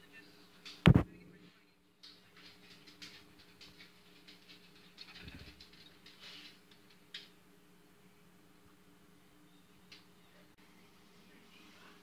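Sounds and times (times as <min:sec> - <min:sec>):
scraping and clicking: 0:02.0 - 0:07.4.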